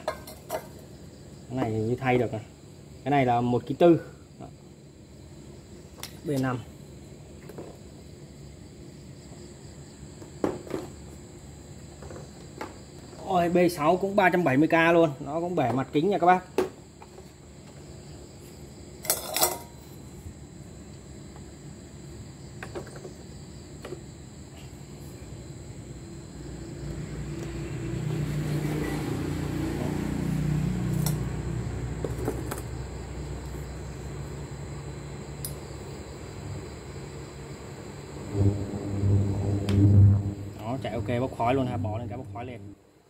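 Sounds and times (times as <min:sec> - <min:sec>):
low steady hum: 0:33.2 - 0:42.8.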